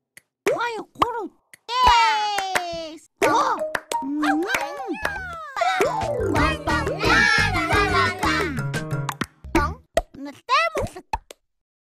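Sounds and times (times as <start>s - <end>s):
children's song: 2.7s - 8.9s.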